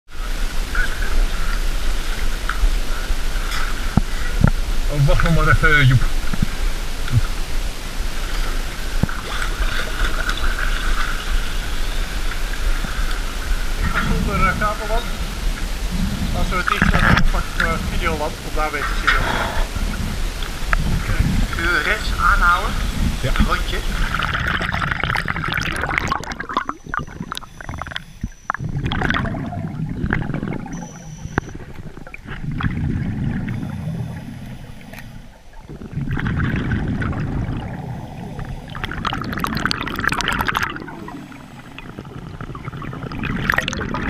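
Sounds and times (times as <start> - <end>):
muffled underwater sound: 0.1 - 44.0
regulator bubbles gurgling: 0.1 - 44.0
water sloshing and splashing: 0.2 - 44.0
sharp underwater clicks: 23.4 - 37.8.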